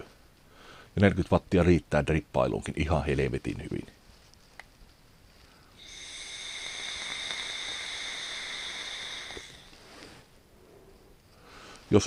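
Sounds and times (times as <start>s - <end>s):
soft vapour exhale: 5.4s - 11.9s
e-cigarette draw whistling hiss: 5.8s - 10.3s.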